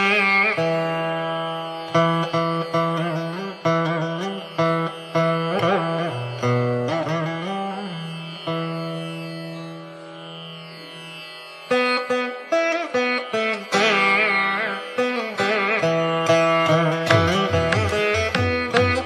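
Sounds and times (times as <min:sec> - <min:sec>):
plucked string instrument: 0:00.0 - 0:19.0.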